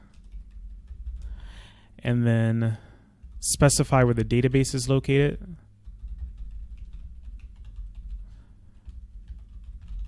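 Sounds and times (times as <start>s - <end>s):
typing on computer keyboard: 0.0s - 1.7s, 5.8s - 10.0s
low steady hum: 0.0s - 10.0s.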